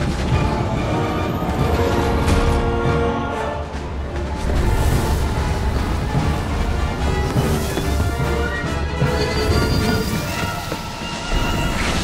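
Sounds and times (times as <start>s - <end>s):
dramatic orchestral film score: 0.0s - 12.0s.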